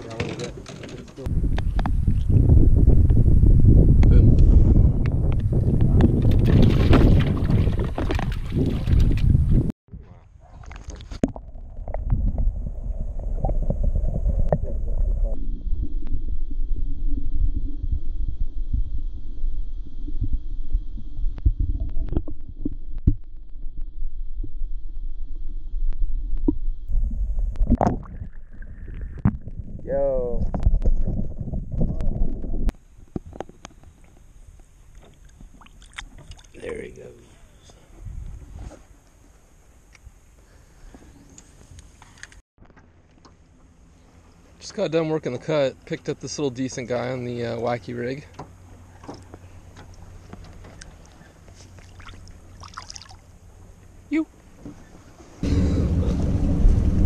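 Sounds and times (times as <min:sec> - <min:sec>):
clicks underwater: 0:05.0 - 0:09.4
muffled underwater rumble and sloshing: 0:10.7 - 0:34.2, 0:53.3 - 0:57.0.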